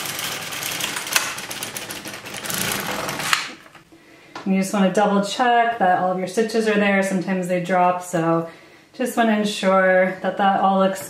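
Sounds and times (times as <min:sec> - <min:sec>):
knitting machine carriage clattering: 0:00.0 - 0:03.8.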